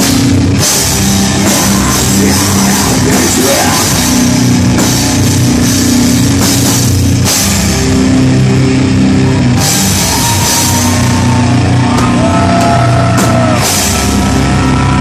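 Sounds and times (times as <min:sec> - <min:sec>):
drum kit with crashing cymbals: 0:00.0 - 0:08.4, 0:09.5 - 0:15.0
bass chugging riffs: 0:00.0 - 0:15.0
distorted electric guitars: 0:00.0 - 0:15.0.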